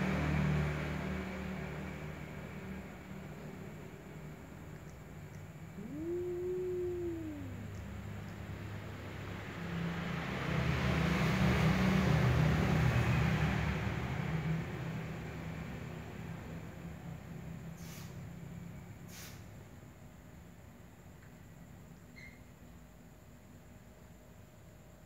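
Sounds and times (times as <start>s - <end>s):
cat meowing: 5.7s - 7.9s.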